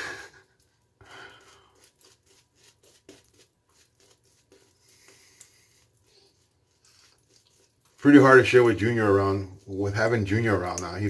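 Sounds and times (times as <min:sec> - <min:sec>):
razor scraping stubble: 0:01.3 - 0:11.0.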